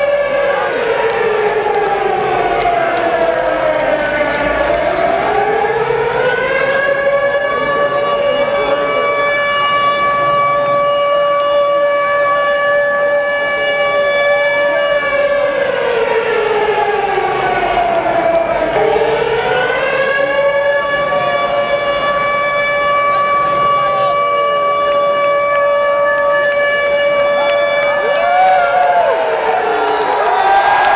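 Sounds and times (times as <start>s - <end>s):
air-raid siren wailing: 0.0s - 30.9s.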